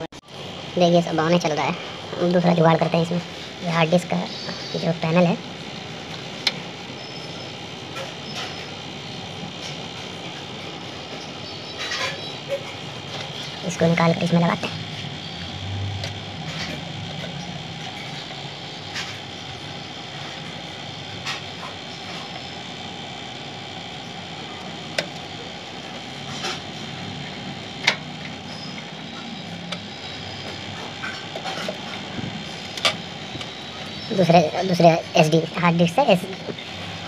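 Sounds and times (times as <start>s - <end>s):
steady background noise: 0.0s - 37.0s.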